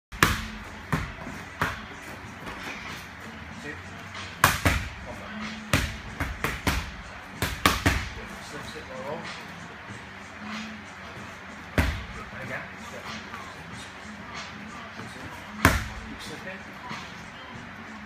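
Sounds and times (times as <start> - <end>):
boxing gloves hitting mitts: 0.1 - 2.6, 4.4 - 5.0, 5.6 - 8.2, 11.7 - 12.2, 15.5 - 16.1.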